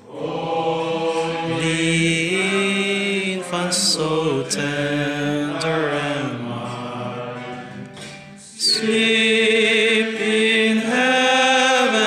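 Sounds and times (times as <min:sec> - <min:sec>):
men singing a carol together: 0:00.0 - 0:12.0.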